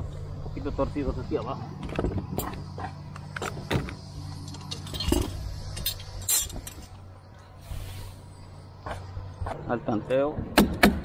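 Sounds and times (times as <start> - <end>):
steady low hum: 0.0 - 10.8.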